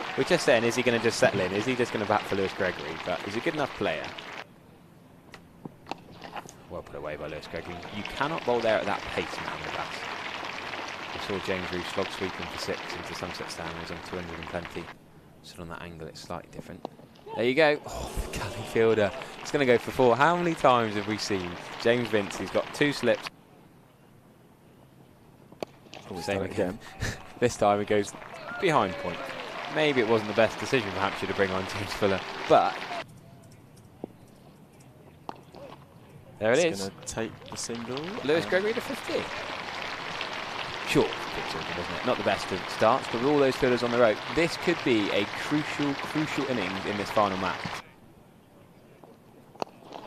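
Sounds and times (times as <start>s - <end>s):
low ground ambience: 0.0s - 10.2s, 11.1s - 23.3s, 29.7s - 49.9s.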